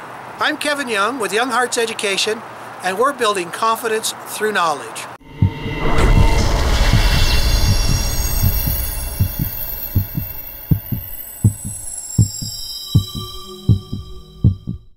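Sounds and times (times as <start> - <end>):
synthesized whoosh: 5.2 - 14.3
high ringing tones: 5.2 - 14.9
heartbeat thumps: 5.3 - 14.9.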